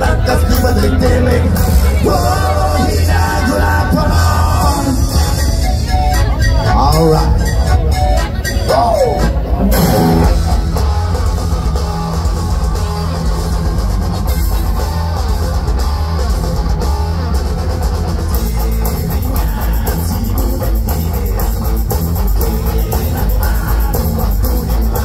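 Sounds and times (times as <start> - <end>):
rock band playing instrumental: 0.0 - 25.0.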